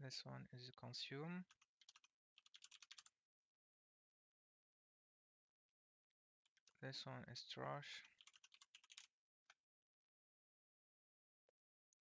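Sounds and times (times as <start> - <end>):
keyboard typing: 1.5 - 3.1, 8.1 - 9.1.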